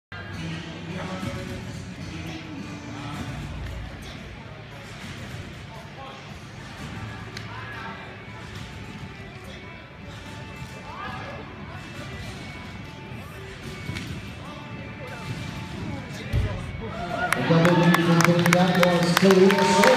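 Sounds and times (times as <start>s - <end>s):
background music: 0.1s - 19.9s
murmur of voices: 0.2s - 19.9s.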